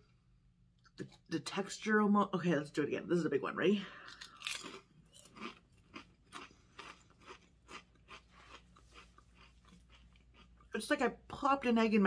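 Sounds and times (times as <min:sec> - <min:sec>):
person crunching chip: 0:04.1 - 0:10.6.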